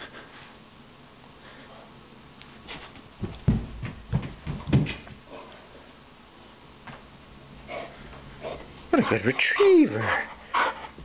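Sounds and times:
heavy footfalls on carpet: 2.7 - 5.3.

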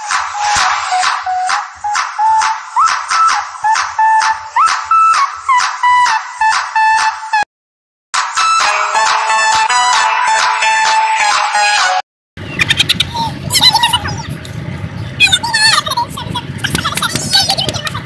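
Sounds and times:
music with steady beat: 0.0 - 7.4, 8.2 - 12.0
high sliding lead melody: 8.2 - 12.0.

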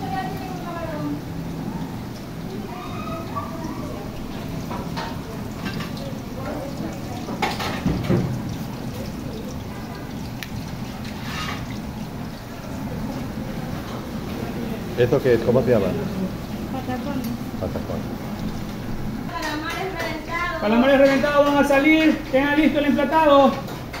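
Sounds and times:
oil bubbling and sizzling: 0.0 - 24.0.

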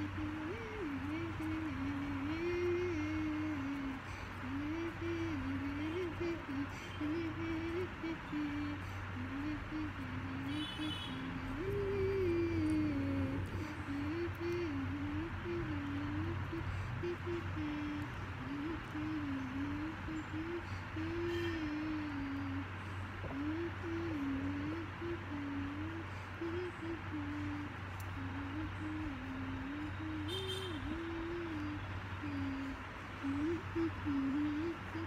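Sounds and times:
girl humming a tune: 0.0 - 35.0
low background hum: 0.0 - 35.0.

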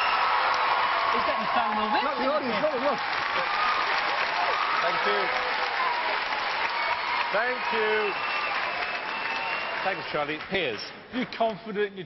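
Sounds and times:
audience applauding: 0.0 - 10.8.

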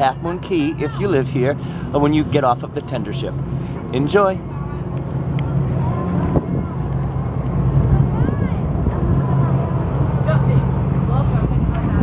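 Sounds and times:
faint voices: 0.0 - 12.0
low rumble: 0.0 - 12.0.

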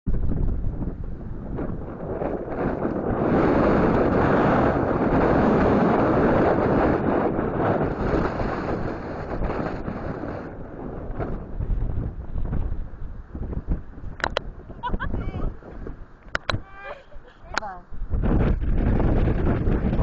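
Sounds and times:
wind buffeting microphone: 0.1 - 20.0.

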